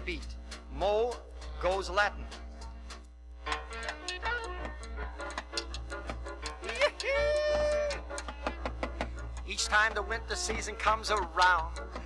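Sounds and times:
rhythmic percussion: 0:00.0 - 0:12.0.

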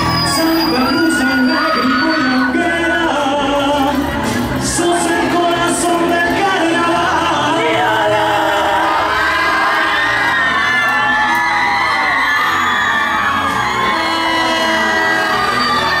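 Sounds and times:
crowd cheering and whooping: 0:00.0 - 0:03.4, 0:04.2 - 0:16.0
live band playing: 0:00.0 - 0:09.6, 0:10.4 - 0:16.0.

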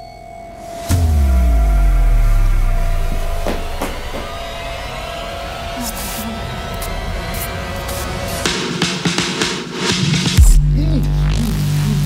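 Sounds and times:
dark droning electronic score: 0:00.8 - 0:08.9
deep cinematic boom: 0:00.9 - 0:05.7.

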